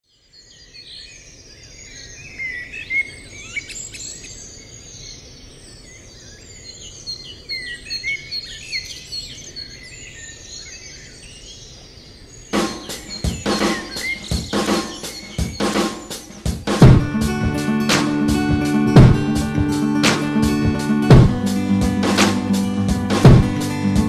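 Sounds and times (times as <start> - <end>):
songbirds singing and chirping: 0.1 - 24.0.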